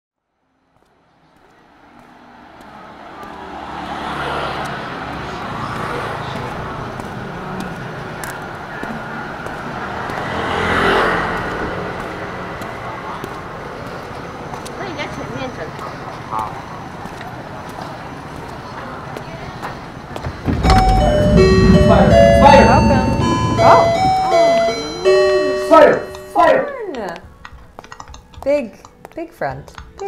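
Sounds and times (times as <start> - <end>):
steady traffic noise: 0.2 - 30.0
vehicle passing: 1.2 - 26.6
indistinct voices: 11.7 - 27.2.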